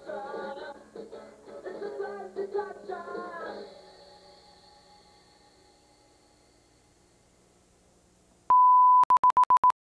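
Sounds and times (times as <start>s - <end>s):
electronic beep tone: 8.5s - 9.7s.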